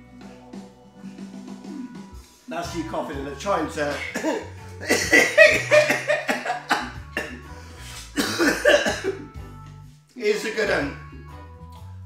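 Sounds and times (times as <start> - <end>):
background music with bass line: 0.0 - 12.0
person coughing harshly: 3.9 - 9.4.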